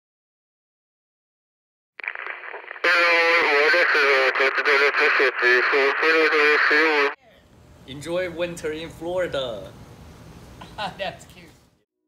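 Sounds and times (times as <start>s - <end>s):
loud voice over radio: 2.8s - 7.2s.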